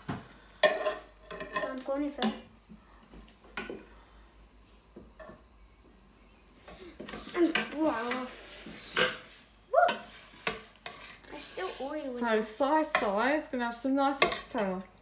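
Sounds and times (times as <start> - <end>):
sizzling pan: 0.0 - 2.7, 6.7 - 14.9.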